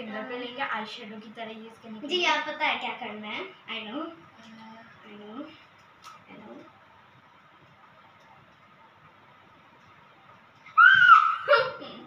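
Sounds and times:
girl squealing: 10.7 - 12.0.

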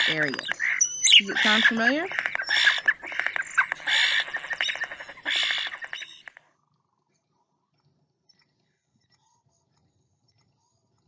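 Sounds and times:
starling song clicks and chatter: 0.0 - 6.4.

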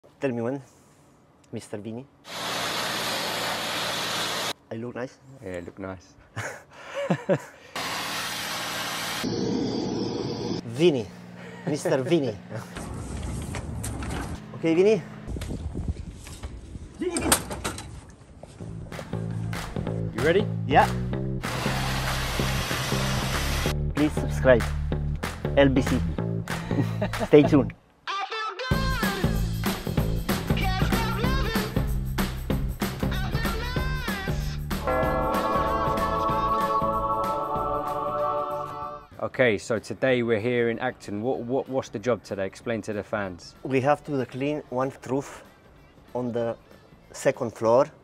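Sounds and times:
pressure washer spraying roof tiles: 2.3 - 4.5, 7.8 - 10.4, 21.4 - 23.7
background music: 18.6 - 48.0.

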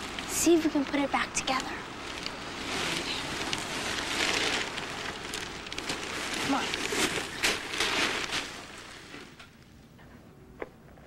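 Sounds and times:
plastic bag rustling and crinkling: 0.0 - 9.6.

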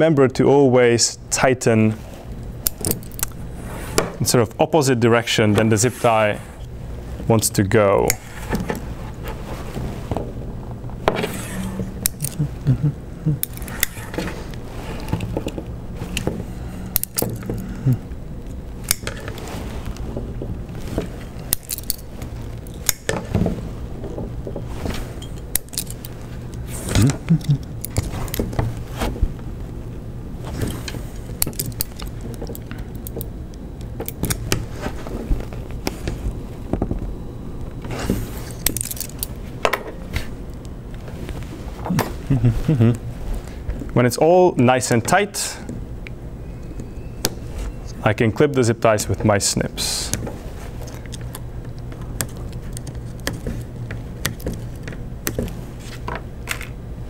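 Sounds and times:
pliers clattering: 2.6 - 3.4, 11.8 - 12.5, 13.4 - 14.4, 16.9 - 17.7, 21.4 - 23.4, 25.2 - 26.2, 30.6 - 33.3, 38.5 - 40.0
zip ties clicking: 12.0 - 12.5, 13.4 - 14.0.

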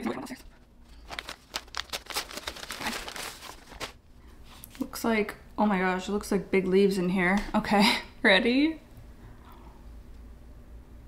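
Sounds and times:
paper wrapping crinkling: 0.3 - 4.9.

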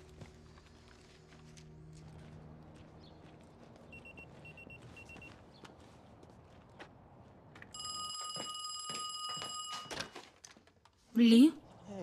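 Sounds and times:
telephone ringing: 7.8 - 10.3.

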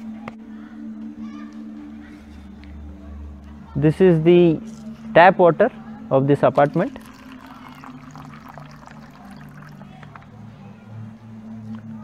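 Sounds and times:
water trickling into plastic cup: 6.5 - 10.3.

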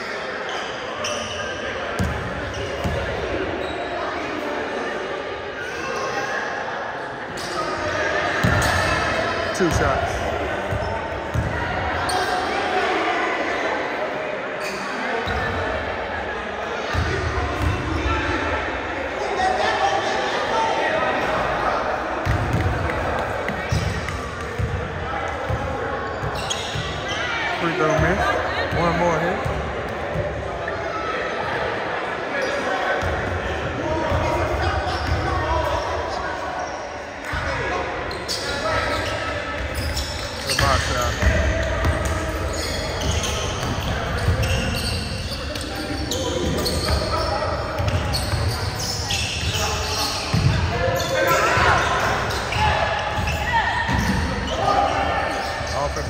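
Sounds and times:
voices echoing in gym: 0.0 - 56.0.

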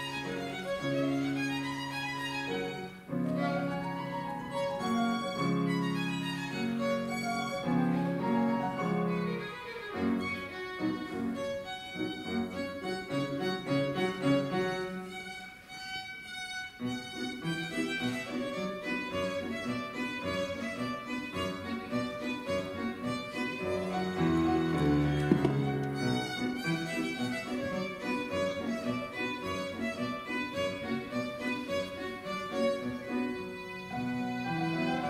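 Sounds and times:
violin melody: 0.0 - 35.0.

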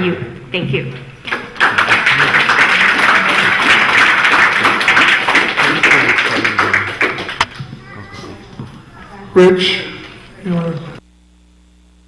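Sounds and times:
audience applauding: 1.2 - 8.1.

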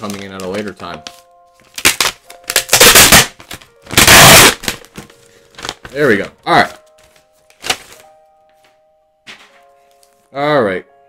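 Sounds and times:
envelope being torn open: 0.0 - 0.8, 1.7 - 6.0, 7.1 - 8.1
paper crackling: 0.0 - 8.7.

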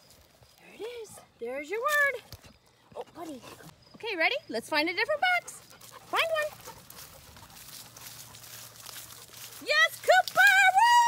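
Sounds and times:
footsteps in grass and dry leaves: 0.0 - 3.4, 5.6 - 11.0.

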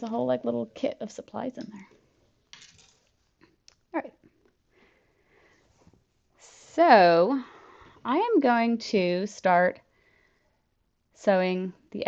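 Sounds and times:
person speaking: 0.0 - 1.9.

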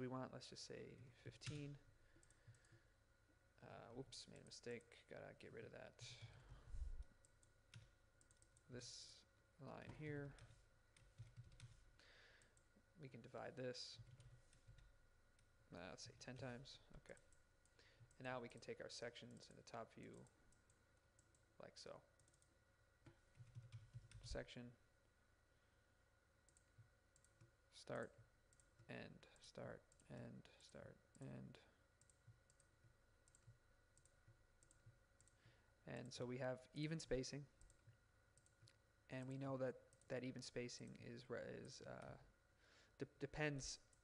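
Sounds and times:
person speaking: 0.0 - 2.0, 3.6 - 7.1, 8.6 - 10.7, 12.8 - 14.2, 15.7 - 17.3, 18.0 - 20.4, 21.6 - 22.2, 24.1 - 24.8, 27.7 - 31.8, 39.1 - 42.3
computer clicks: 1.4 - 2.8, 7.2 - 8.7, 22.2 - 24.4, 32.0 - 35.4, 37.6 - 38.8.

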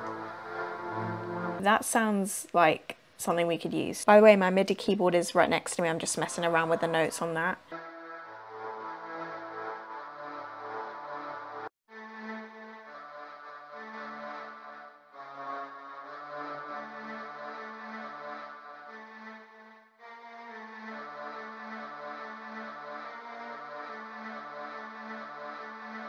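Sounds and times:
synthesizer playing slow melody: 0.0 - 1.6, 7.8 - 19.0.

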